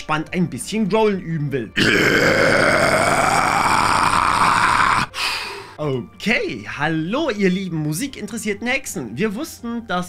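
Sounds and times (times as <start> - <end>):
man's deep vocal growl: 1.8 - 5.2.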